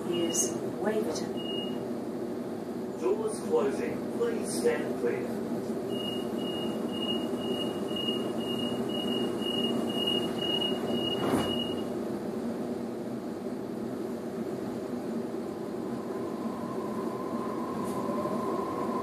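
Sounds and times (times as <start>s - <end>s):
train rumble: 0.0s - 19.0s
high door warning beeps: 1.3s - 1.8s, 5.9s - 11.9s
train doors shutting thud: 10.0s - 11.9s.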